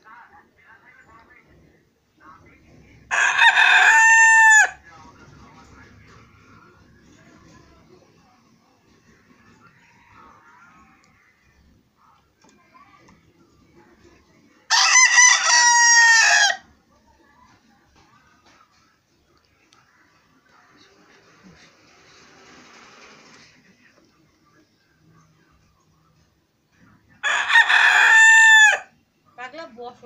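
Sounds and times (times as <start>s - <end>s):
rooster crowing: 3.1s - 4.8s, 14.7s - 16.6s, 27.2s - 28.9s.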